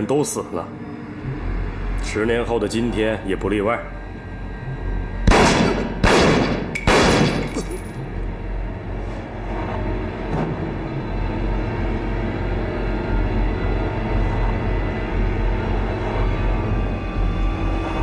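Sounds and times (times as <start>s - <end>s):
low tense film score drone: 0.0s - 18.0s
pistol shots: 5.3s - 7.6s.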